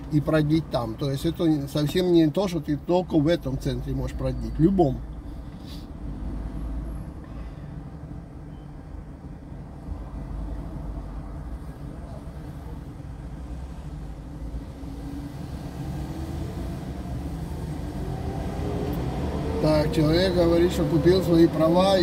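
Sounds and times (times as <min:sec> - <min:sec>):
low rumble of city traffic: 0:00.0 - 0:22.0
vehicle engine accelerating: 0:13.6 - 0:22.0.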